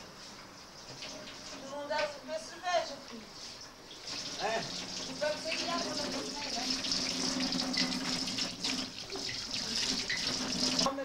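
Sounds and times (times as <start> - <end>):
tap water splashing into basin: 4.0 - 10.9.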